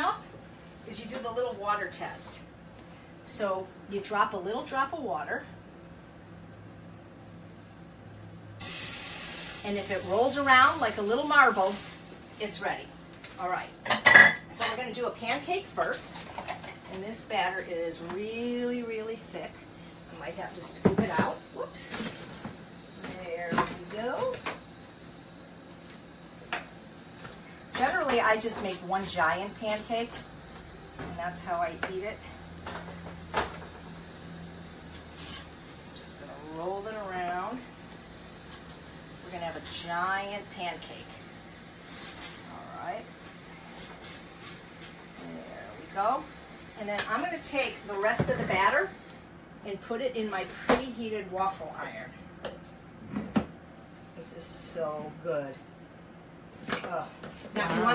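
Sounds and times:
steady low hum: 0.0s - 57.5s
batter hissing in hot pan: 1.4s - 2.4s, 8.6s - 13.2s, 21.4s - 49.3s.

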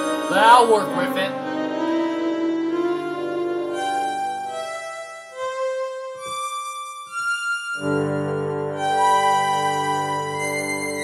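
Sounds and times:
electronic keyboard melody: 0.0s - 11.0s
keyboard chord with bass note: 0.0s - 11.0s.

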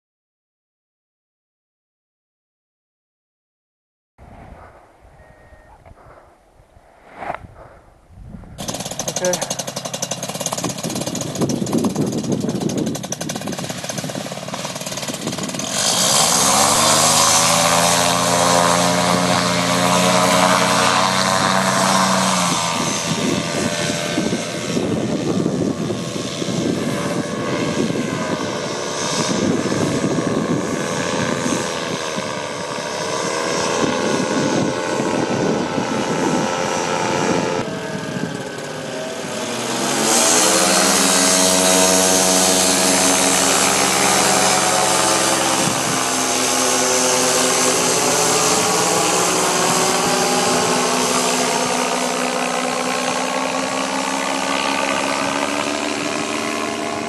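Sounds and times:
paramotor engine and propeller: 8.4s - 57.0s.

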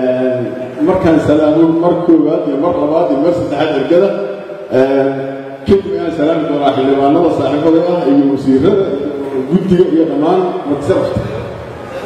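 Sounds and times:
man chanting through microphone: 0.0s - 11.6s.

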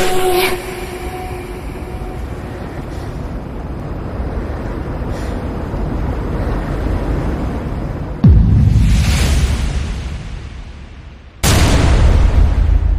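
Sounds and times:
low rumbling noise: 0.0s - 12.9s.

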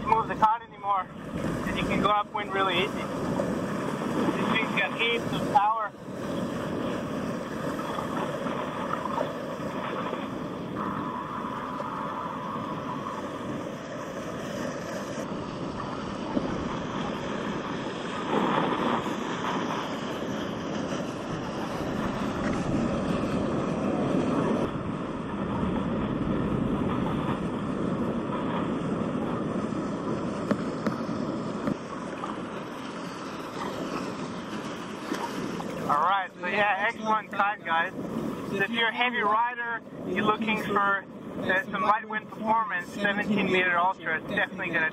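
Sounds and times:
water washing: 0.0s - 44.9s
wind rushing over microphone: 0.0s - 44.9s.

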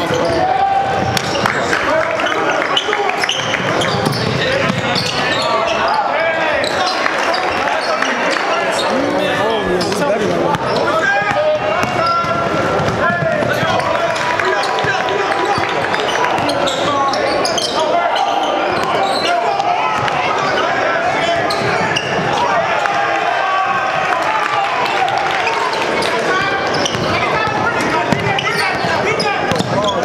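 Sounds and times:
overlapping voices: 0.8s - 4.9s, 6.4s - 17.0s, 17.8s - 29.5s
basketball bouncing on wooden floor: 10.5s - 13.8s, 28.1s - 28.9s.

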